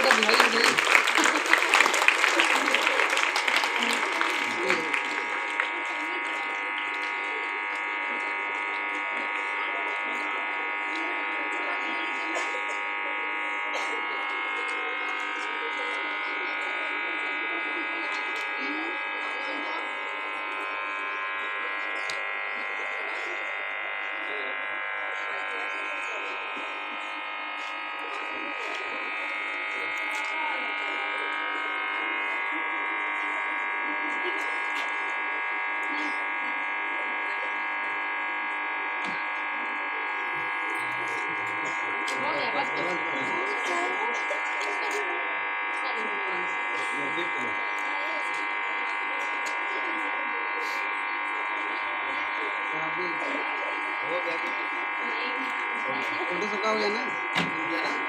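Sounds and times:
buzzing drone: 0:00.0 - 0:58.0
voices: 0:00.0 - 0:58.0.

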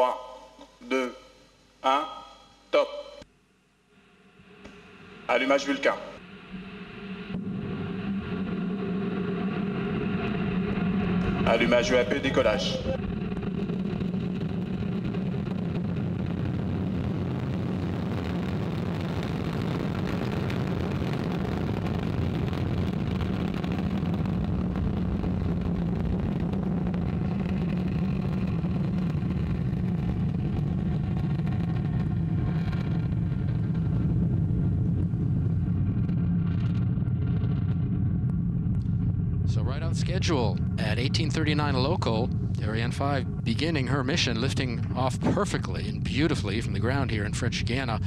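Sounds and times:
rocket engine deep rumble: 0:04.0 - 0:48.0.

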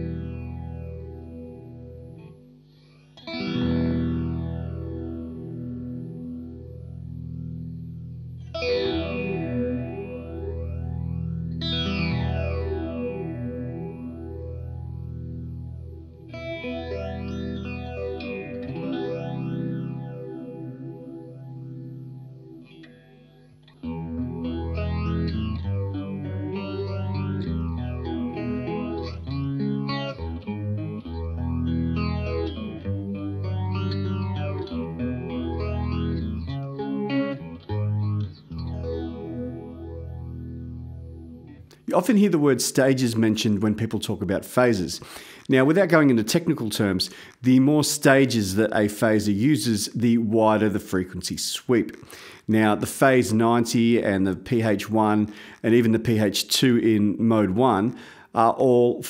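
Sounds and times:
electric guitar with phaser: 0:00.0 - 0:41.9.

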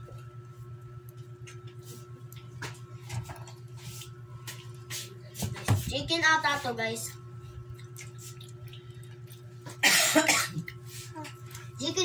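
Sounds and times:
steady low hum: 0:00.0 - 0:12.0
loud cough: 0:09.8 - 0:10.7.

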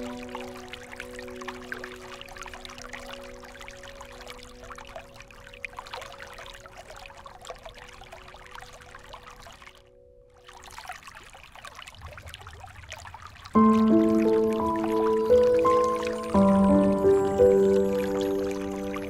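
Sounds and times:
soft meditation music chord: 0:00.0 - 0:10.3, 0:13.6 - 0:19.0
water dripping and trickling: 0:00.0 - 0:19.0.

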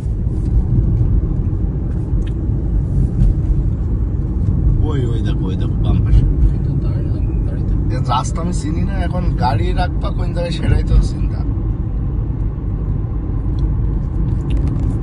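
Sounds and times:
car driving rumble inside cabin: 0:00.0 - 0:15.0.

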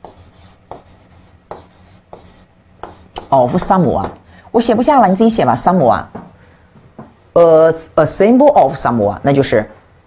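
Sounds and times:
chalk scratching on blackboard: 0:00.0 - 0:04.2
chalk tapping on board: 0:00.0 - 0:04.2.

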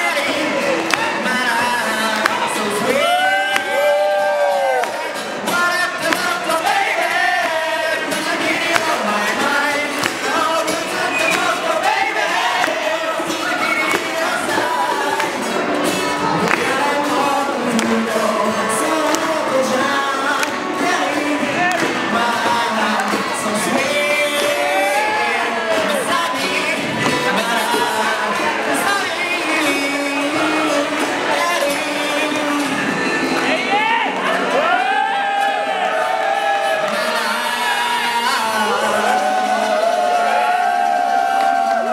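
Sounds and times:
acoustic guitar: 0:00.0 - 0:34.7
man singing into microphone: 0:00.0 - 0:34.8, 0:36.0 - 0:41.9.

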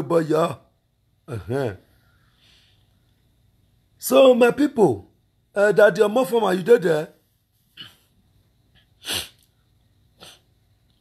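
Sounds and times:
faint breaths: 0:01.8 - 0:03.4
man sneezing: 0:09.0 - 0:09.5.

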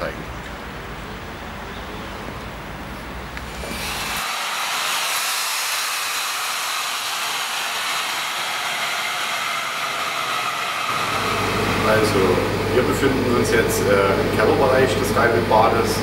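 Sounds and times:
steady rushing noise: 0:03.4 - 0:14.4.

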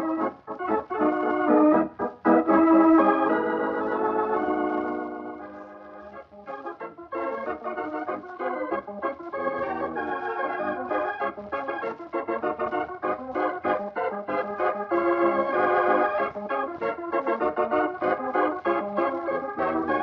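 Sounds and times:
organ chord: 0:00.0 - 0:20.0
quick organ notes: 0:00.0 - 0:20.0.

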